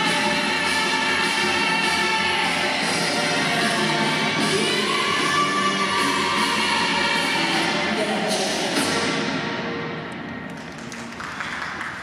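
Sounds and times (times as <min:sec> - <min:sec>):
audience applause: 0:10.5 - 0:12.0.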